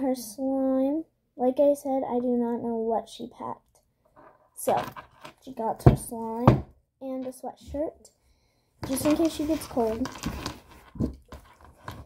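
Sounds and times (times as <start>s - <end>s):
objects knocking: 4.8s - 6.8s.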